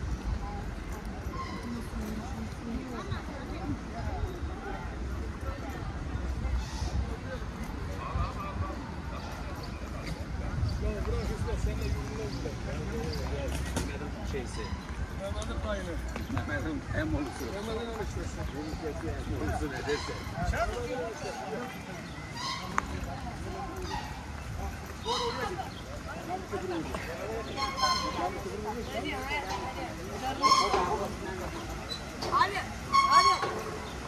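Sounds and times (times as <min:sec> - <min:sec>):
distant voices talking: 0:00.0 - 0:34.0
footsteps on paved path: 0:00.0 - 0:34.0.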